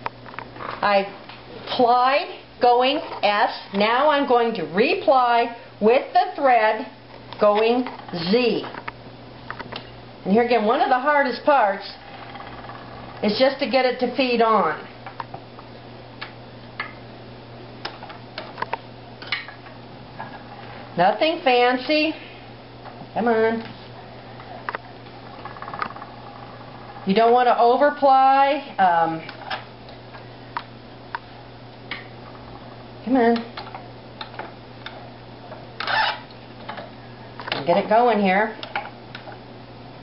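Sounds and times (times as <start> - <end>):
low steady hum: 0.0 - 40.0.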